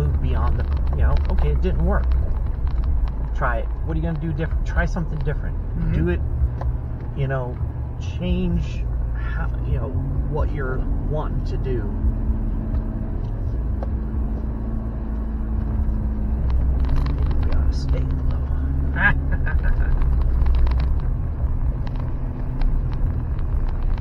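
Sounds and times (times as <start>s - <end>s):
vehicle engine and tyres rumbling: 0.0s - 24.0s.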